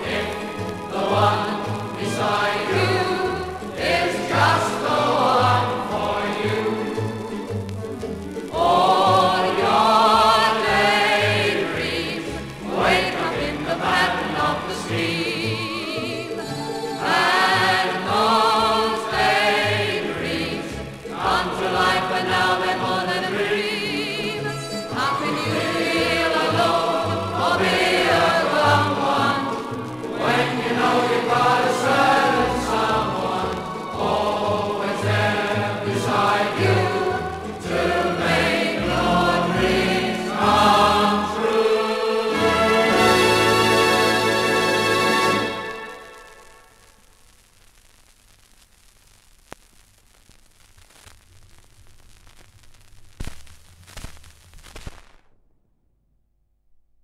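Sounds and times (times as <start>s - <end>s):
choir singing: 0.0s - 7.5s, 8.4s - 46.2s
orchestral popular song: 0.0s - 46.4s.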